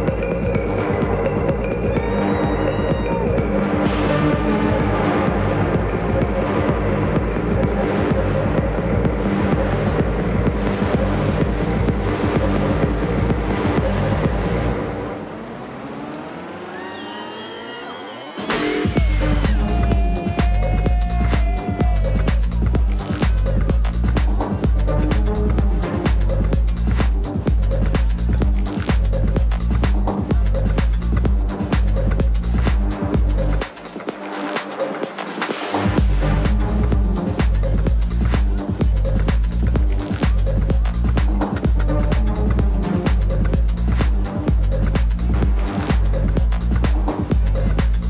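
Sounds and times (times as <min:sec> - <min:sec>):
electronic dance music: 0:00.0 - 0:48.0
rising sweep: 0:11.7 - 0:23.0.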